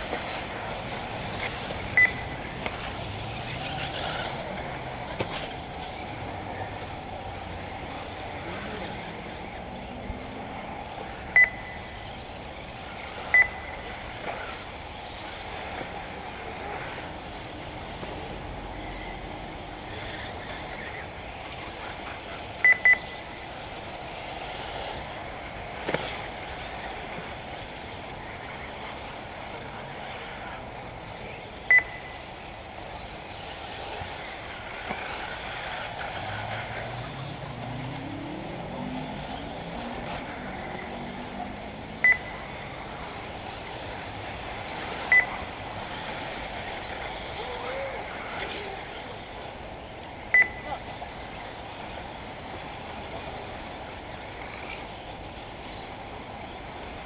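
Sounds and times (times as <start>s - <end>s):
distant rc cars running: 0.0s - 57.0s
short sharp high beeps: 2.0s - 2.4s, 11.4s - 12.0s, 13.3s - 13.8s, 22.6s - 23.2s, 31.7s - 32.3s, 42.0s - 42.4s, 45.1s - 45.4s, 50.3s - 50.7s.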